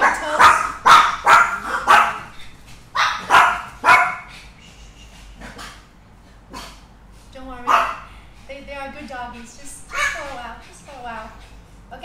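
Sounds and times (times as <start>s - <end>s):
small dog barking: 0.0s - 2.4s, 3.0s - 4.3s, 7.7s - 8.0s, 9.9s - 10.3s.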